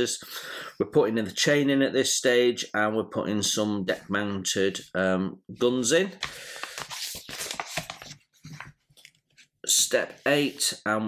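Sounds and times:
paper rustling: 6.2s - 9.5s
paper crinkles and scrapes: 6.6s - 9.1s.

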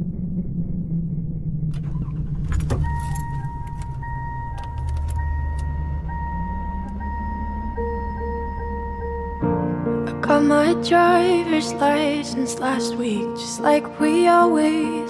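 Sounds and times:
car engine low rumble: 0.0s - 13.2s
clicks: 1.7s - 9.0s
car warning chime: 2.1s - 9.8s
keys jangling: 2.5s - 4.0s
high electronic tone: 2.8s - 10.3s.

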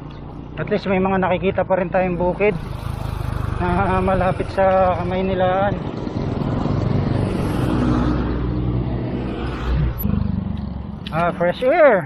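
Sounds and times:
road noise: 0.0s - 12.0s
vehicle engines passing: 0.0s - 12.0s
wind noise: 2.6s - 11.2s.

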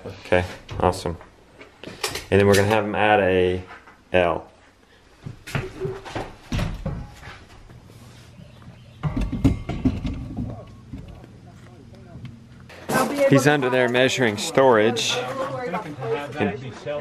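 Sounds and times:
steel tube frame knocking: 9.0s - 11.2s.

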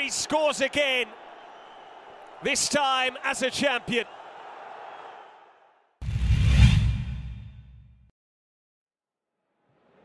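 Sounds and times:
stadium crowd noise: 0.0s - 6.0s.

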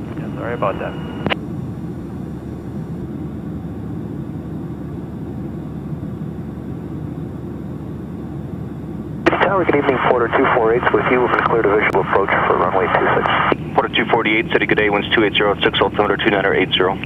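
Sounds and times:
plane engine drone from cabin: 0.0s - 17.0s.

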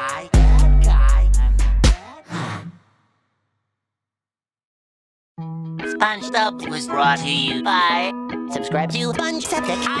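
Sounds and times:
music: 0.0s - 2.4s, 5.4s - 10.0s.

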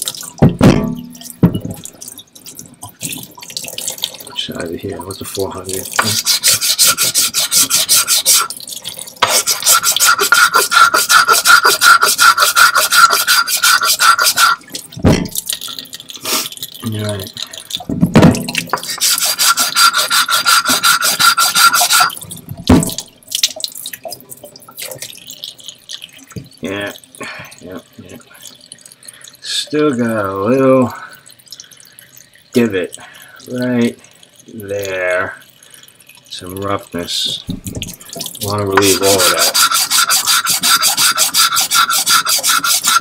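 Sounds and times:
knocks: 0.4s - 1.9s, 17.9s - 18.9s, 37.5s - 38.0s
whetstone rasping on diamond plate: 9.2s - 14.6s, 18.9s - 22.1s, 38.8s - 43.0s.

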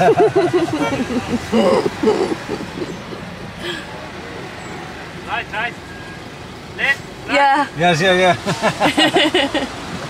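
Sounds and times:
voices: 0.0s - 9.6s
city traffic noise: 0.0s - 10.0s.

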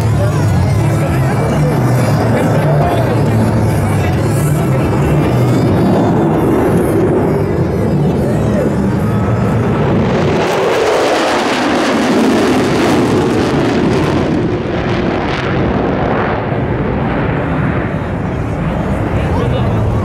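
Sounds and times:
jet fighters flying past: 0.0s - 20.0s.

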